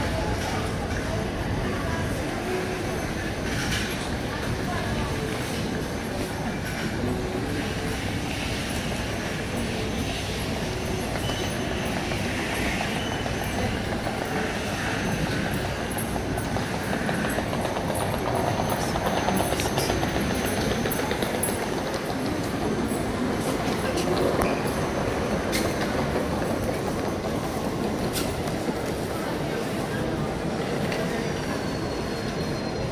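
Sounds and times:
airport terminal hum: 0.0 - 32.9
murmur of voices: 0.0 - 32.9.

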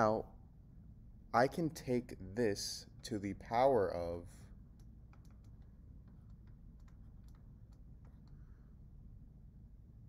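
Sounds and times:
stylus tapping on tablet: 4.8 - 8.4.

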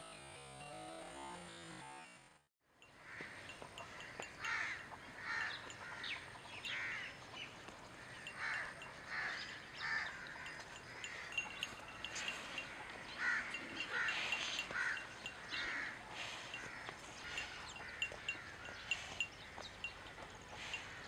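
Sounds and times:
crows cawing: 2.9 - 21.0
small birds chirping: 2.9 - 21.0.

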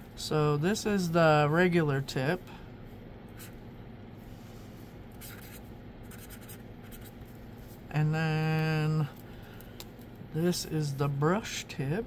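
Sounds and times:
marker scratching on paper: 3.4 - 3.6, 5.2 - 7.3.

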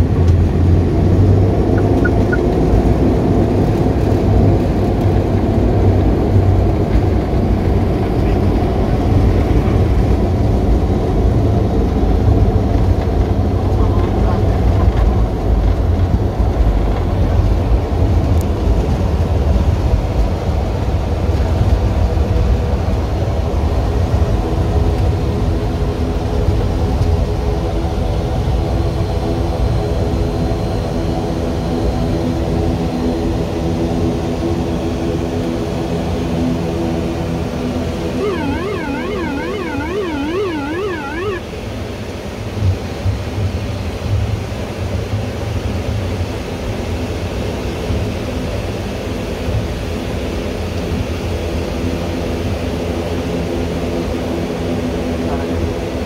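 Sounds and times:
propeller and engine tones: 0.0 - 24.2, 36.8 - 41.6
wheels rumbling on runway: 0.0 - 25.0
aircraft engines rumbling: 0.0 - 26.7.

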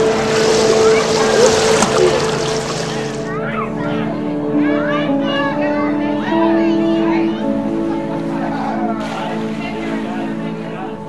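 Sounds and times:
steady hum: 0.0 - 4.5
pool water splashing: 0.0 - 5.0, 7.4 - 11.0.

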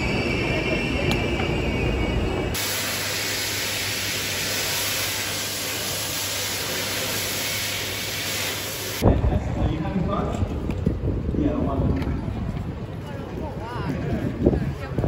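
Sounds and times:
street bustle with voices: 0.0 - 2.6, 9.0 - 15.0
electric hand dryer blowing: 2.5 - 9.0.

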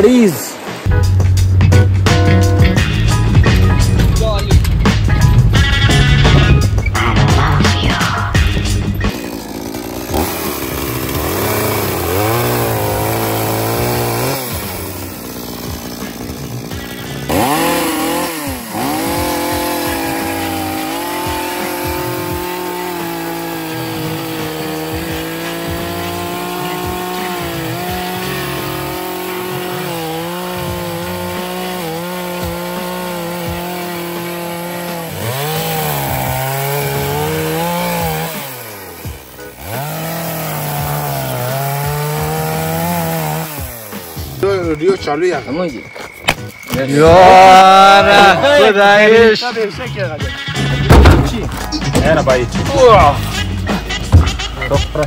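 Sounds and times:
chainsaw cutting logs: 8.7 - 44.8, 46.2 - 49.2.

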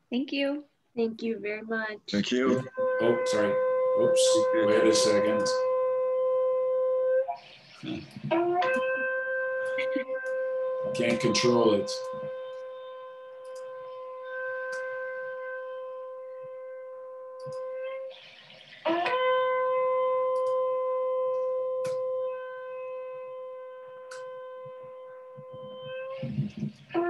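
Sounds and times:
shofar blasts: 2.2 - 7.1, 7.8 - 17.0.

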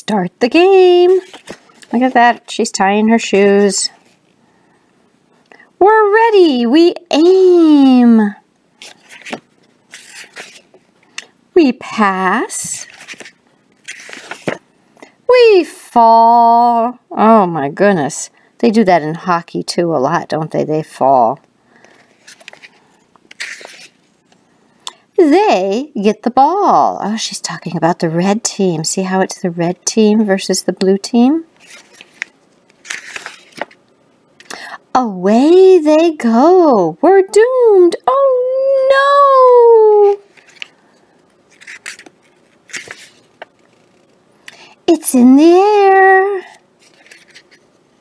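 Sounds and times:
paper rustle of page turning: 1.2 - 2.5, 8.8 - 10.8, 12.7 - 14.6, 22.0 - 24.1, 31.6 - 33.8, 41.5 - 44.2, 46.4 - 47.7.

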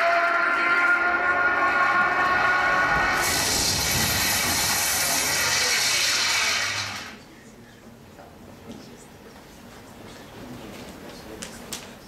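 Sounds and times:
low rumble: 1.6 - 7.2
loud rushing hiss: 1.7 - 7.2.

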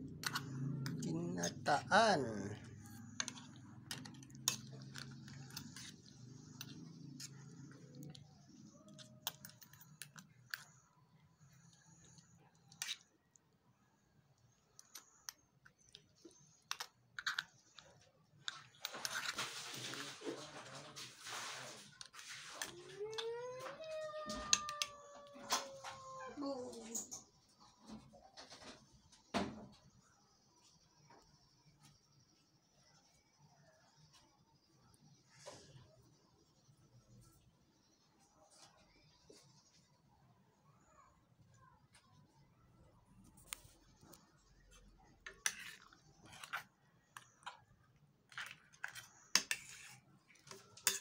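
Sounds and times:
cat meowing: 23.0 - 26.8.

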